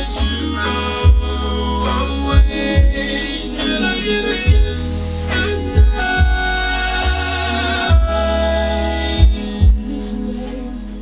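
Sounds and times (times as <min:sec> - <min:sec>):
deep bass line: 0:00.0 - 0:11.0
synthesizer chords: 0:00.0 - 0:11.0
heavy low thumps: 0:01.0 - 0:01.5, 0:02.2 - 0:03.3, 0:04.5 - 0:10.0.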